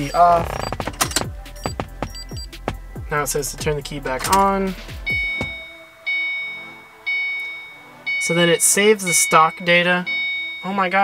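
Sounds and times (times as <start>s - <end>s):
car dashboard warning chime: 0.0s - 4.5s, 5.1s - 11.0s.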